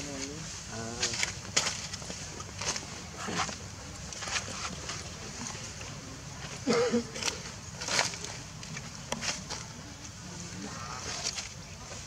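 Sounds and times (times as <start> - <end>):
indistinct voices: 9.6 - 12.0.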